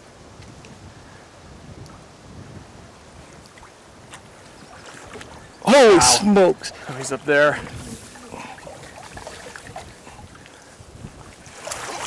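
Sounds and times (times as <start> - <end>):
wind on microphone: 0.0 - 12.0
river water lapping: 3.1 - 12.0
water splash: 11.4 - 12.0.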